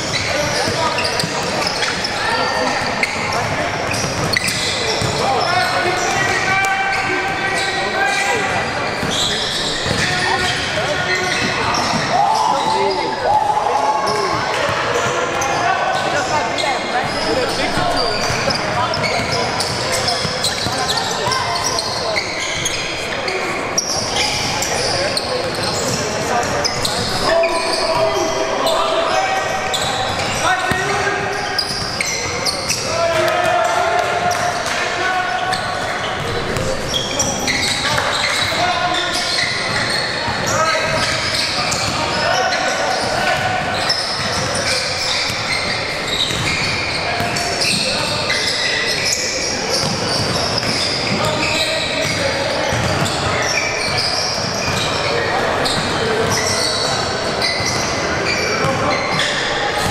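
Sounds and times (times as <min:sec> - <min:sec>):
sneakers squeaking: 0:00.0 - 0:59.9.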